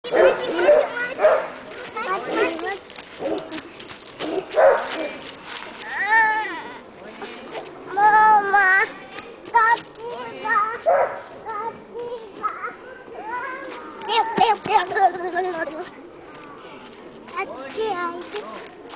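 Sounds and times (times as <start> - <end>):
voices talking: 0.0 - 18.9.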